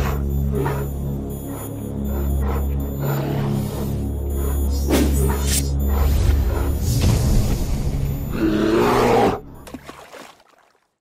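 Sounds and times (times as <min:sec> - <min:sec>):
electronic music: 0:00.0 - 0:07.1
deep animal roar: 0:08.3 - 0:09.5.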